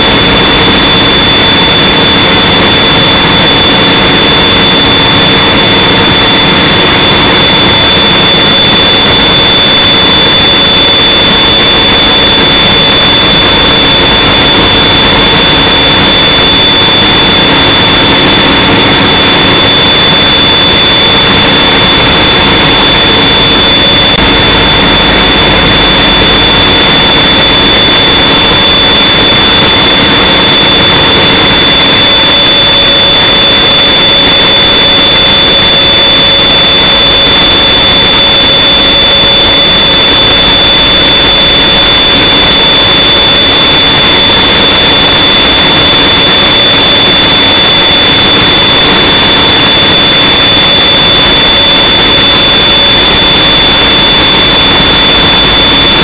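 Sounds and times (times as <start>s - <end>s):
heavy machinery running: 0.0s - 56.0s
high-pitched whine: 0.0s - 56.0s.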